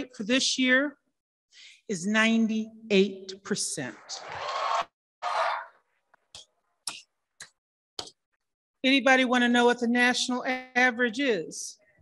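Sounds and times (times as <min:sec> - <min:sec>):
audience cheering and applause: 0:04.2 - 0:05.7.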